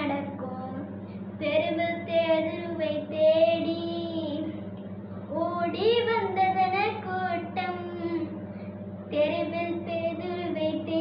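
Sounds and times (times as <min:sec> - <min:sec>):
girl singing: 0:00.0 - 0:04.6, 0:05.3 - 0:08.4, 0:09.1 - 0:11.0
low electrical hum: 0:00.0 - 0:11.0.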